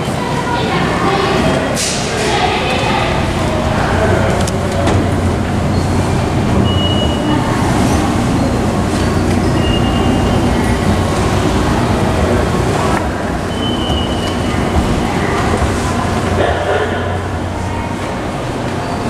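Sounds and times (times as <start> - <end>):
escalator rumble and hum: 0.0 - 19.0.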